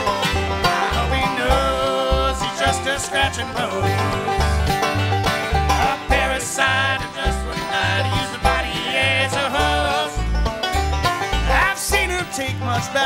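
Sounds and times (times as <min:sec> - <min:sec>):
banjo: 0:00.0 - 0:13.0
fiddle with sliding notes: 0:00.0 - 0:13.0
guitar: 0:00.0 - 0:13.0
upright bass steady beat: 0:00.0 - 0:13.0.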